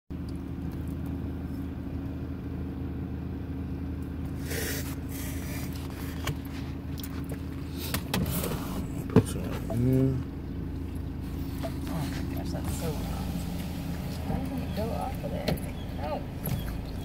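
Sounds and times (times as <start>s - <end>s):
car engine idling: 0.1s - 17.0s.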